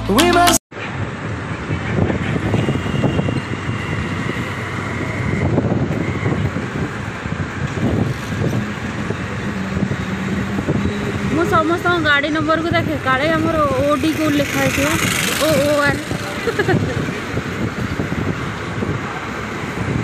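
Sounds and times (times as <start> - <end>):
road traffic noise: 0.0 - 20.0
wind on microphone: 0.9 - 20.0.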